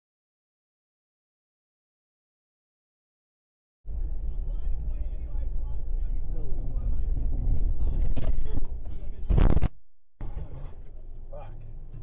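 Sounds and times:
vehicle driving low rumble: 3.9 - 12.0.

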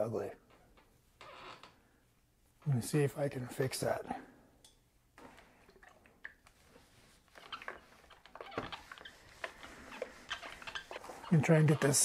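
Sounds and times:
fabric rustling: 6.5 - 12.0.

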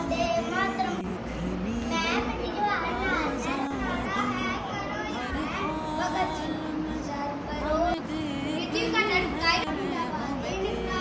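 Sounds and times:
child speaking: 0.0 - 1.1, 1.8 - 7.9, 8.6 - 11.0
children's voices: 0.0 - 11.0.

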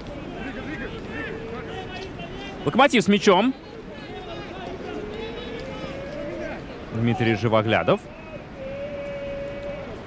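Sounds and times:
open-air field ambience: 0.0 - 10.0
distant shouts of players: 3.6 - 10.0.

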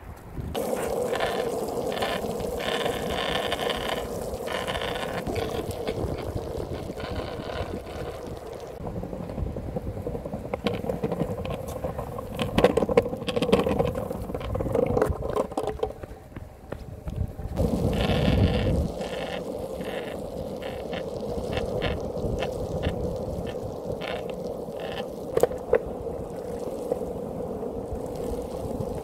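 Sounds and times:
longboard wheels rolling on asphalt: 0.0 - 29.0
board rattling over brick pavers: 0.6 - 16.1.

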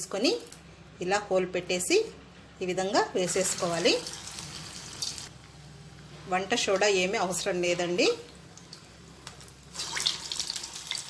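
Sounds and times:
batter sizzling in hot oil: 3.2 - 5.3, 8.6 - 11.0.

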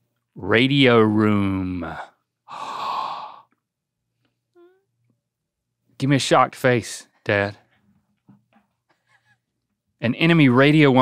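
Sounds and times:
person sighing: 2.5 - 3.6.

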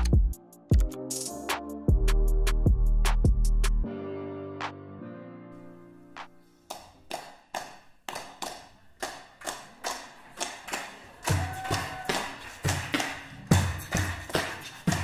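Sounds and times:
beatboxed kick-drum thumps: 0.0 - 1.0, 12.4 - 15.0
vocal percussion claps: 9.5 - 15.0.

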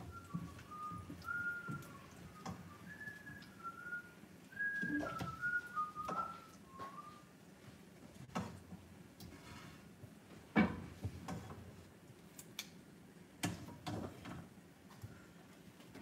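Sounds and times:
person whistling a tune: 0.0 - 7.3.

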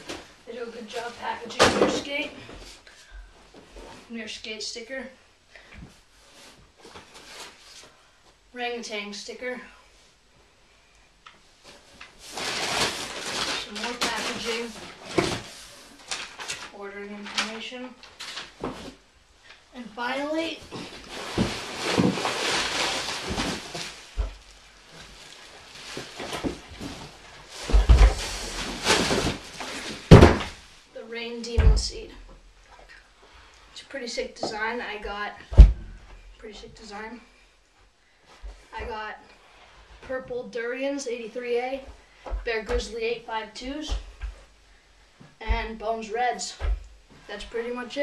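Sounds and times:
paper and packaging crinkling: 11.8 - 19.0, 20.7 - 30.8
dull thumps of board and box: 28.9 - 30.6.

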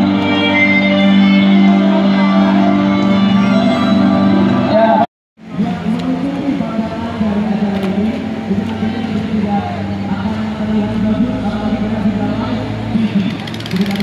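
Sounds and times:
background music: 0.0 - 14.0.

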